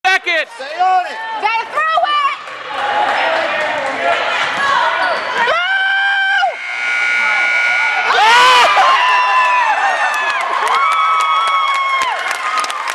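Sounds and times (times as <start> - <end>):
crowd cheering: 1.0 - 12.9
spectators shouting: 1.2 - 12.2
scoreboard buzzer: 6.1 - 9.4.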